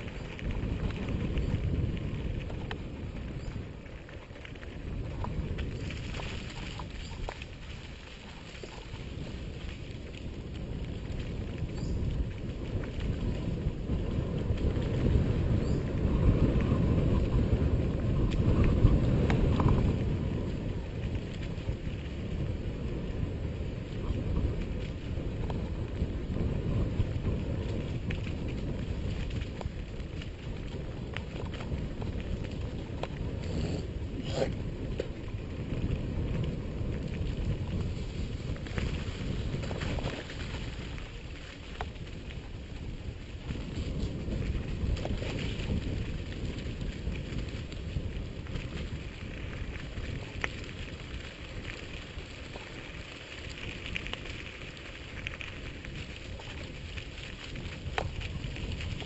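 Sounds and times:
bike tyres on dirt: 0:00.0 - 0:59.0
wind on microphone: 0:00.0 - 0:59.0.

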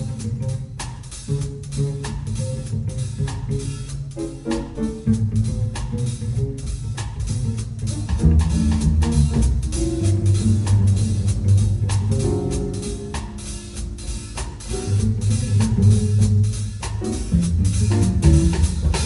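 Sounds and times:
drum kit with cymbals: 0:00.0 - 0:19.0
upright bass line: 0:00.0 - 0:19.0.

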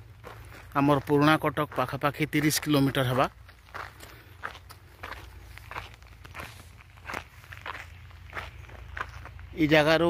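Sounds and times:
footsteps on loose stones: 0:00.0 - 0:10.0.

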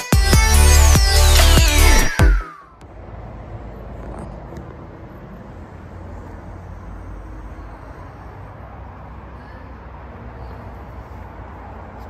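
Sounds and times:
low rumble of background noise: 0:02.8 - 0:12.0.

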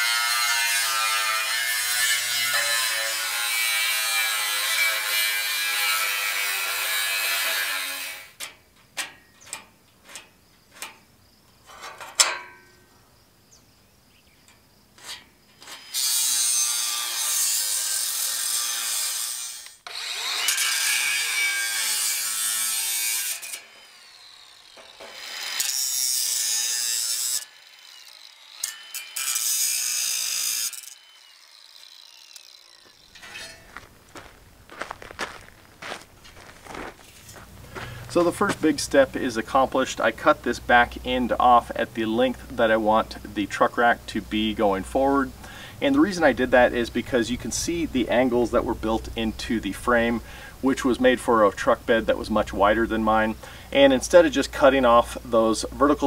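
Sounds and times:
angle grinder cutting steel: 0:00.0 - 0:08.4, 0:15.0 - 0:34.3
metal knocks and clanks: 0:11.6 - 0:12.7, 0:33.1 - 0:33.9.

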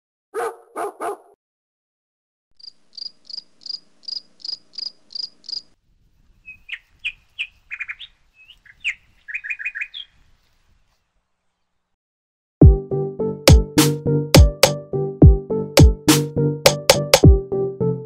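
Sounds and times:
bird chirping and trilling: 0:02.6 - 0:10.6.

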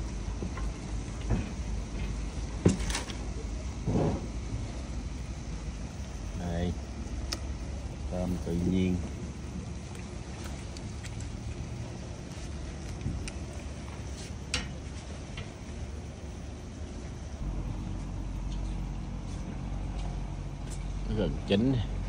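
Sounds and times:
deep steady hum: 0:00.0 - 0:22.0
low rumble: 0:14.8 - 0:22.0.

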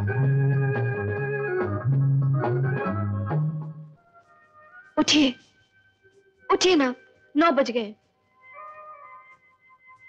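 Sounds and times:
background film music: 0:00.0 - 0:10.0.

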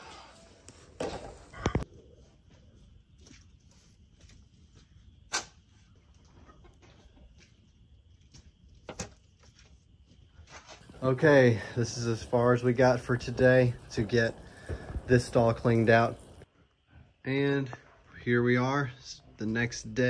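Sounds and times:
loud thuds: 0:14.4 - 0:16.4.

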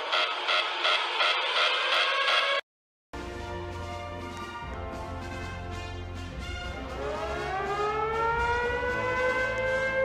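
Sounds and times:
siren winding up: 0:00.0 - 0:02.6, 0:07.4 - 0:10.0.

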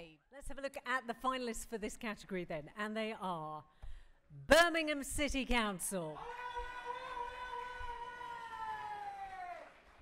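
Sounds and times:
person whooping: 0:06.2 - 0:09.6.

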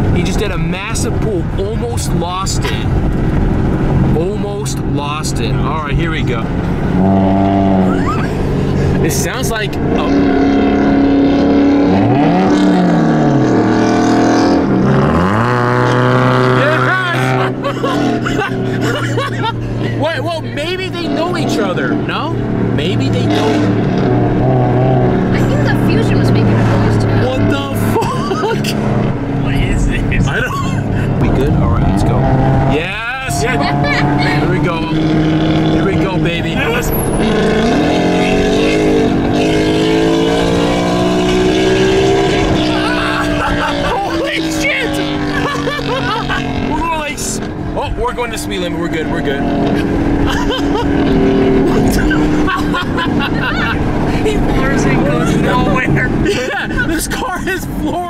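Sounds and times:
car engine accelerating: 0:00.0 - 0:58.0.

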